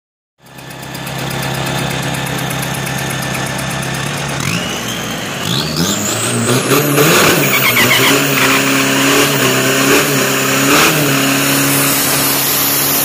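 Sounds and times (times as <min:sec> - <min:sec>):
diesel engine revving: 0:00.4 - 0:13.0
turbo whine: 0:02.4 - 0:10.5.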